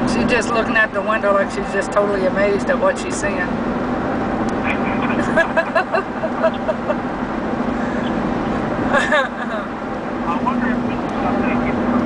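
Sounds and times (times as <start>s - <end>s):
road and engine noise in cabin: 0.0s - 12.0s.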